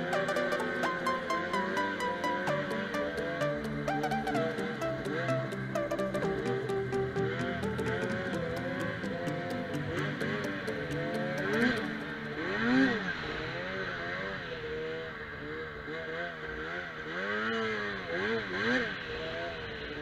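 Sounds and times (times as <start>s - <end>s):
snowmobile engine revving: 11.1s - 19.5s.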